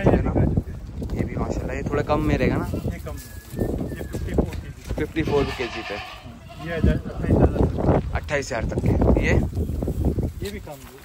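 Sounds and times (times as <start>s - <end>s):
goat bleating: 5.1s - 7.2s.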